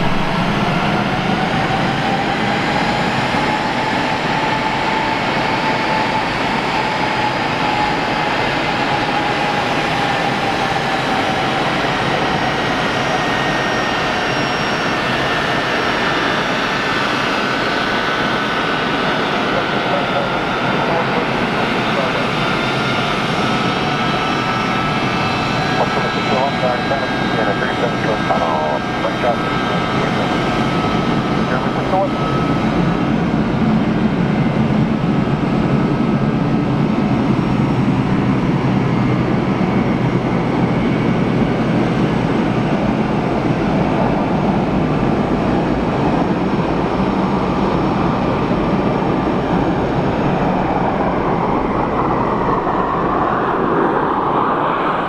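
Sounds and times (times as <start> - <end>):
low engine rumble: 0.0 - 1.9
jet engines whining: 0.0 - 55.0.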